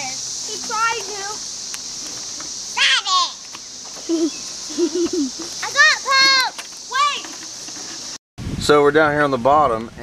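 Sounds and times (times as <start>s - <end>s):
steady high hiss: 0.0s - 10.0s
child squealing: 2.8s - 3.4s.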